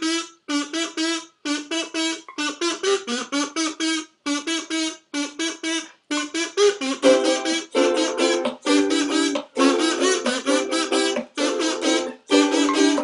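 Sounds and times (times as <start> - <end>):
kazoo playing melody: 0.0 - 13.0.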